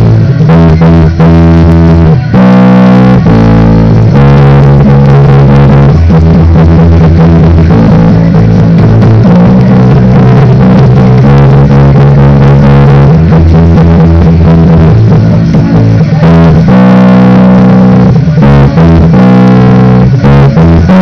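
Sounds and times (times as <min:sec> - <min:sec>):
electric bass guitar bassline: 0:00.0 - 0:21.0.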